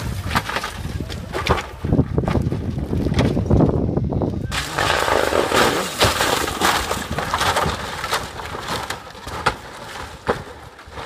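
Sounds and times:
broad rushing noise: 4.4 - 7.0
rally car engine: 4.5 - 8.6.

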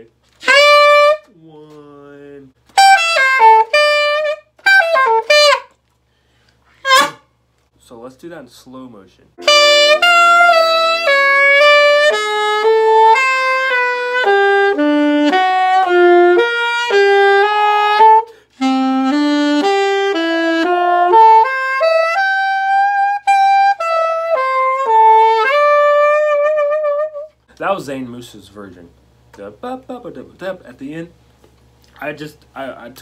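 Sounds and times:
saxophone playing jazz lick: 0.3 - 5.8, 6.7 - 7.3, 9.4 - 27.4.

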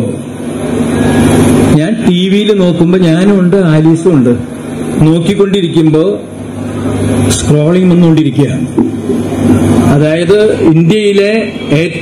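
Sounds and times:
faint background hum: 0.0 - 12.0
man speaking into a microphone: 1.7 - 6.4, 7.3 - 8.8, 9.8 - 12.0.

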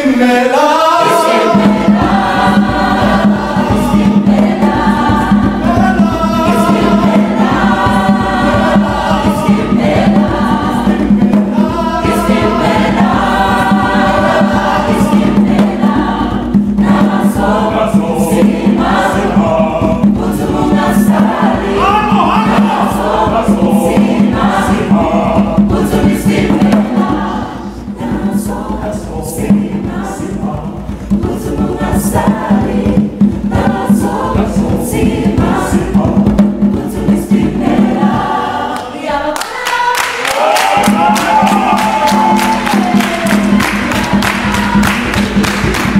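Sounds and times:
mixed choir singing in harmony: 0.0 - 45.9
sharp rhythmic hits: 0.0 - 45.9.

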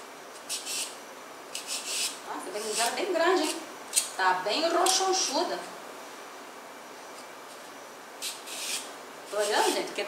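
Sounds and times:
blade scraping eggplant skin: 0.4 - 4.2, 8.2 - 10.0.

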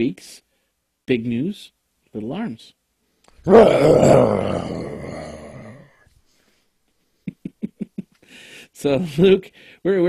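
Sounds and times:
dinosaur roar: 3.4 - 6.0.

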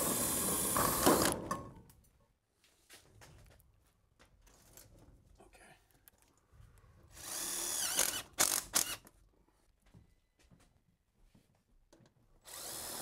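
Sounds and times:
cordless drill driving screw: 7.2 - 9.1, 12.5 - 13.0.

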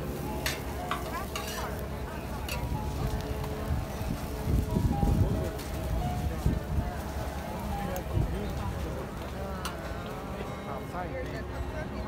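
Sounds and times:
pancakes sizzling on a griddle: 0.0 - 9.2
metal spatulas scraping griddle: 0.4 - 1.8.

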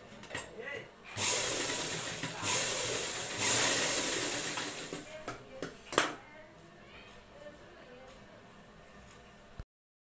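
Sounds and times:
sewing machine stitching: 1.1 - 5.1.

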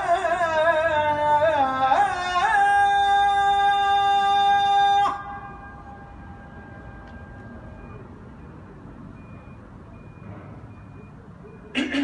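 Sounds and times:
low engine rumble: 0.0 - 12.0
vehicle reversing beeper: 4.7 - 11.8.

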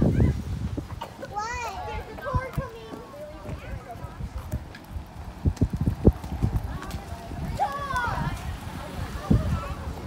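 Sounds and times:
footsteps on pavement: 0.4 - 10.0
child's voice: 1.0 - 4.0, 6.7 - 10.0.

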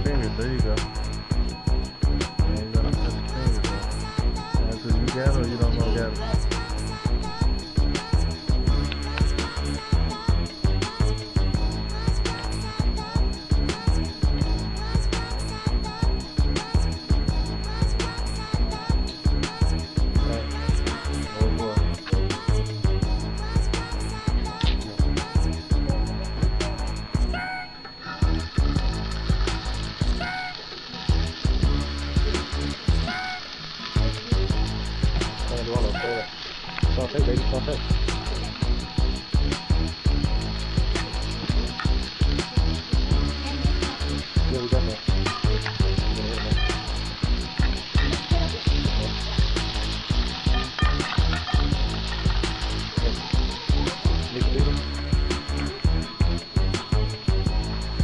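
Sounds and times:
background music with heavy bass: 0.0 - 58.0
vegetables sizzling in a pan: 3.1 - 58.0.

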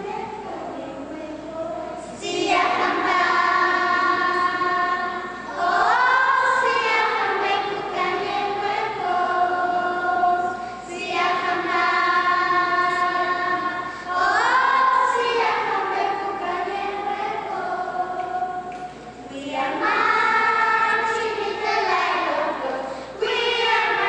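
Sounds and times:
children's choir singing: 0.0 - 24.0.

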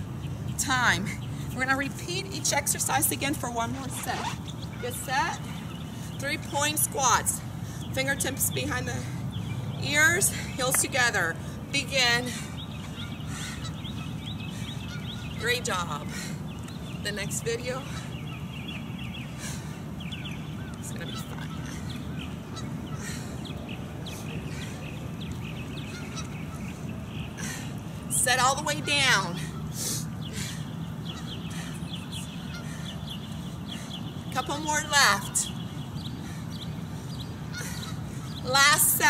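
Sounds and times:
bird chirping: 0.0 - 6.9, 11.8 - 39.0
bird chirping rapidly: 28.2 - 39.0.

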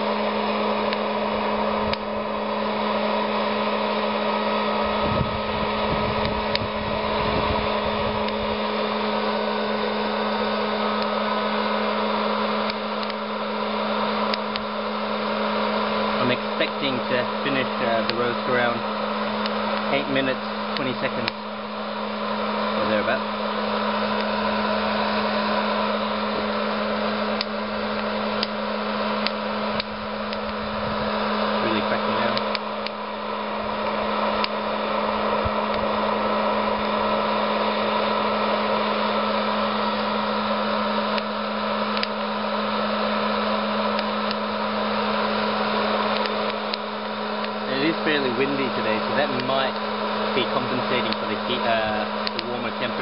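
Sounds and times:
popcorn popper fan humming: 0.0 - 53.0.

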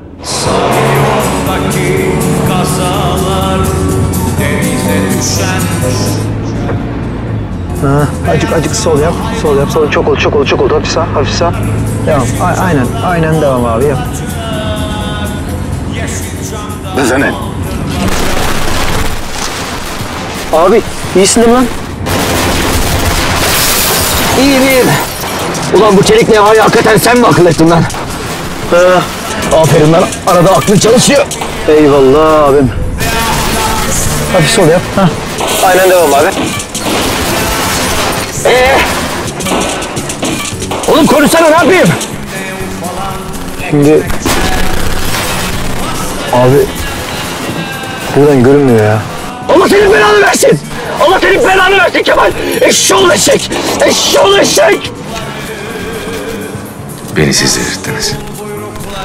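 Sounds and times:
dramatic music: 0.0 - 58.6
loud crash-like bursts: 17.9 - 26.2, 27.0 - 31.9, 33.0 - 48.2.

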